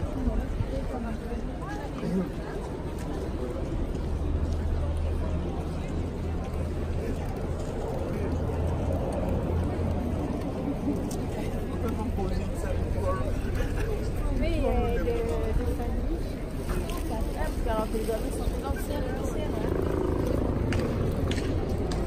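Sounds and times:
crowd chatting: 0.0 - 22.0.

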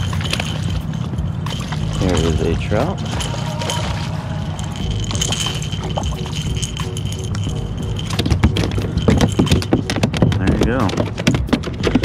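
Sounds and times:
fish splashing in water: 0.0 - 6.9
clicks and knocks: 4.8 - 12.0.

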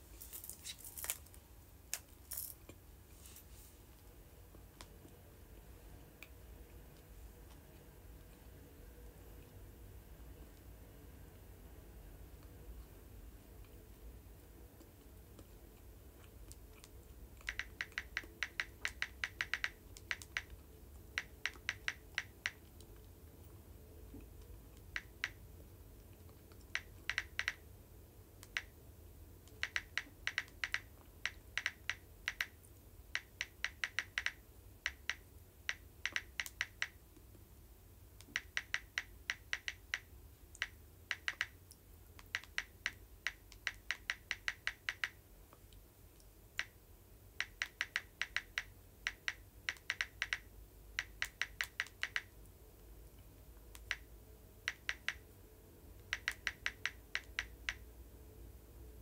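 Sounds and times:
typing taps on smartphone: 16.8 - 23.0, 26.6 - 27.6, 29.5 - 37.0, 38.2 - 41.6, 42.2 - 45.2, 47.4 - 52.3, 53.7 - 55.3, 56.0 - 57.9.

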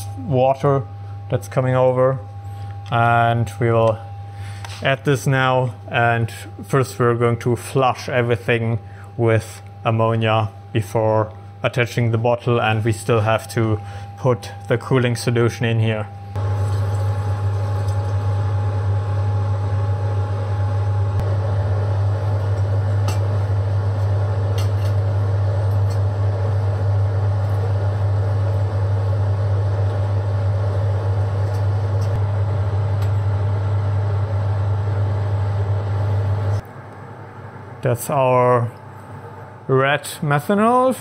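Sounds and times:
low machine hum: 0.0 - 41.0.

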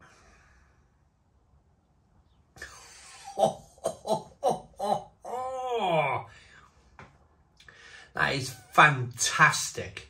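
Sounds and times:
breathy exhale: 0.0 - 1.0, 7.6 - 8.1
man laughing: 2.6 - 6.3.

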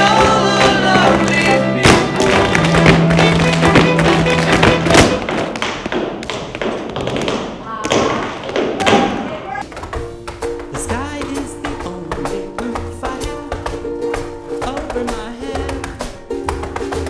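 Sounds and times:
music: 0.0 - 5.5, 9.6 - 17.0
tap shoes on stage floor: 0.0 - 17.0.

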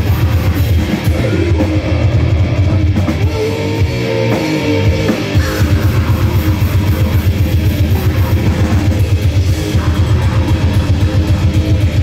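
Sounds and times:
grindcore band playing live: 0.0 - 12.0.

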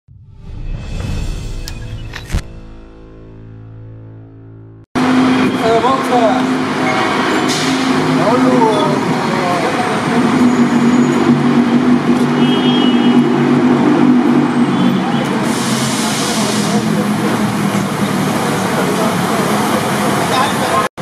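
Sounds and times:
vehicle engine humming: 4.5 - 20.9
people's voices: 5.4 - 12.5, 14.6 - 20.9.

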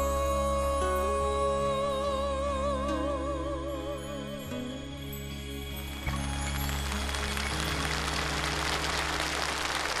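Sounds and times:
audience applause: 6.2 - 10.0.

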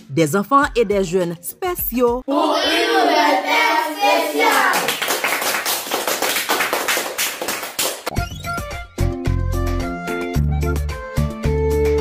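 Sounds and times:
children clapping: 4.2 - 8.1.

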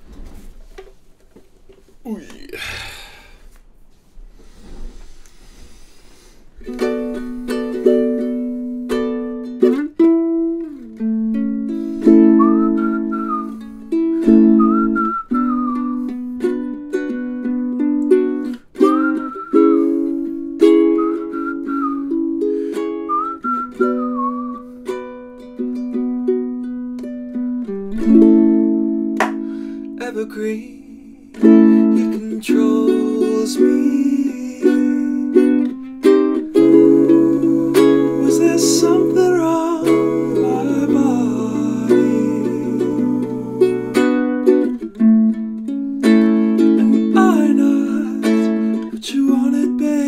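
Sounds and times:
ukulele strumming: 6.6 - 50.0
whistled melody: 6.7 - 26.5, 31.3 - 45.0.

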